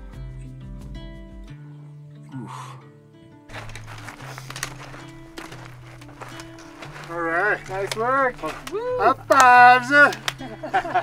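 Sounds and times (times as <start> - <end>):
background music with low notes: 0.0 - 11.0
boots on rocky ground: 3.5 - 11.0
trekking poles clicking on rock: 3.5 - 11.0.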